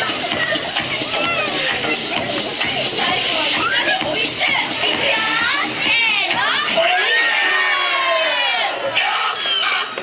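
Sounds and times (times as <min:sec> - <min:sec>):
children shouting and shrieking: 0:00.0 - 0:10.0.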